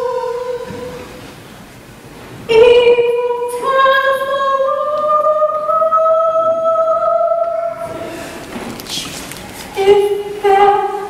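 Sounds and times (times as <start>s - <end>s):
woman singing unaccompanied: 0.0s - 1.0s, 2.5s - 7.9s, 9.7s - 11.0s.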